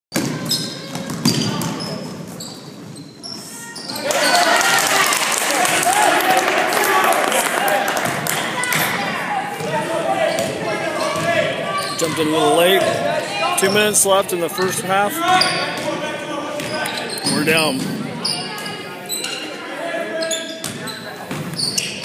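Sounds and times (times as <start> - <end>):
sneakers squeaking: 0.1 - 4.4, 9.6 - 16.0, 16.6 - 22.0
echoing crowd and player voices: 0.1 - 22.0.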